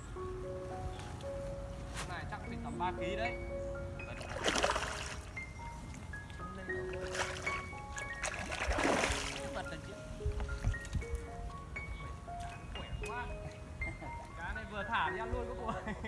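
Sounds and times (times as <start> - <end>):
background music melody: 0.0 - 16.0
fish splashing at water surface: 4.1 - 5.3, 6.9 - 9.6.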